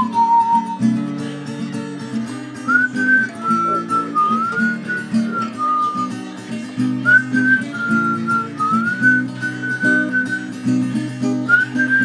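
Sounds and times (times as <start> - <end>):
man whistling a melody: 0.0 - 1.1, 2.6 - 6.2, 6.8 - 12.0
acoustic guitar strumming: 0.0 - 12.0.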